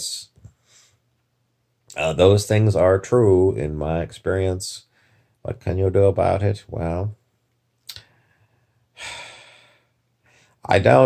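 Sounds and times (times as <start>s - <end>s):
man sighing: 9.0s - 9.9s.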